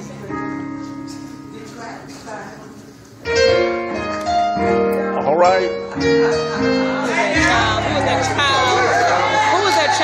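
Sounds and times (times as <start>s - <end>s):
keyboard playing held chords: 3.2s - 10.0s.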